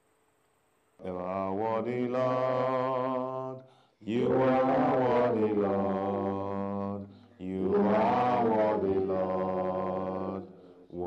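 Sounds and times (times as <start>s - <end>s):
singing praise chorus: 1.0s - 11.0s.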